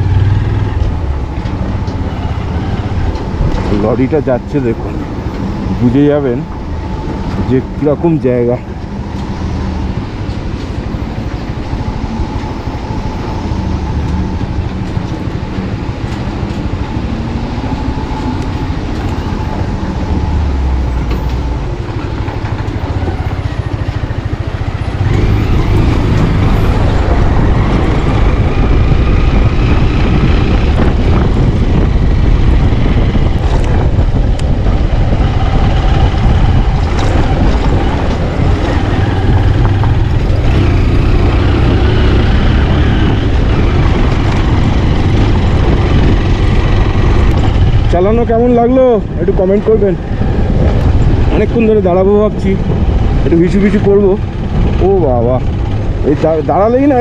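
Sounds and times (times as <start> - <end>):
road and wind noise: 0.0 - 57.0
motorcycle engine running: 8.7 - 57.0.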